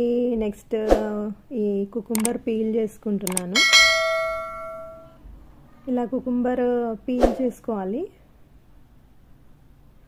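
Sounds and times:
bright bell ding: 0:03.6 - 0:05.2.

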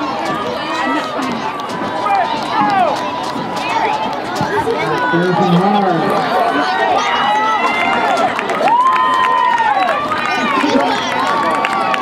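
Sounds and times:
overlapping voices: 0:00.0 - 0:12.0
people laughing: 0:10.2 - 0:11.6.

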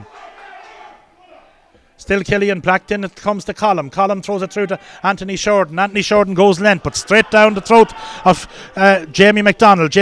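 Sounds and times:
distant crowd shouting: 0:00.0 - 0:01.7, 0:07.0 - 0:08.8.

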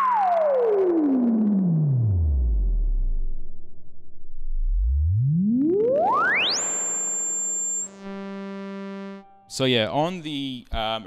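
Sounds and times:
buzzy low synth tone: 0:01.0 - 0:09.6
synthesizer whistling tone gliding up: 0:04.4 - 0:08.1.

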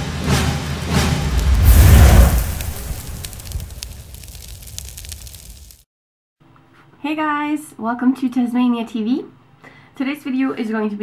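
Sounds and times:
deep explosive boom: 0:00.9 - 0:05.7
scattered crackling: 0:01.2 - 0:05.8.

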